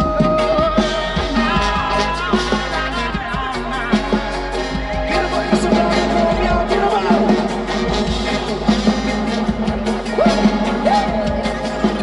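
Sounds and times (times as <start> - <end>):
reggae rock band playing: 0.0 - 12.0
trumpet: 0.0 - 12.0.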